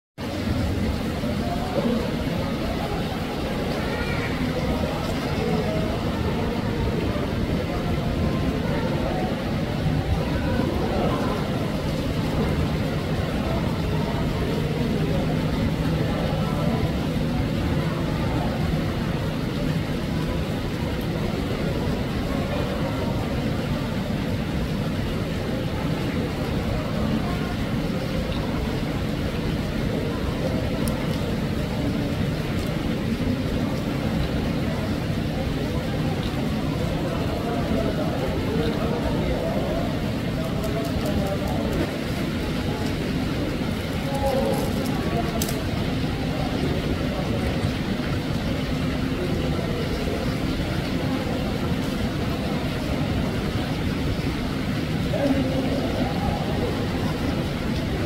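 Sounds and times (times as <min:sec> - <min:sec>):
people talking faintly: 0:00.2 - 0:58.0
small waterfall splashing: 0:00.2 - 0:58.0.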